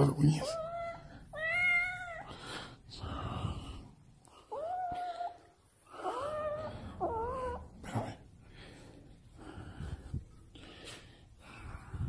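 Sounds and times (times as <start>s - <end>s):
cat meowing: 0.4s - 2.3s.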